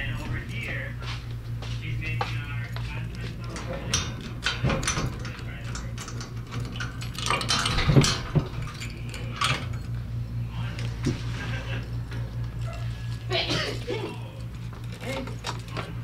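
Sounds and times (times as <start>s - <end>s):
steady low hum: 0.0s - 16.0s
metal keys jangling: 3.3s - 10.0s.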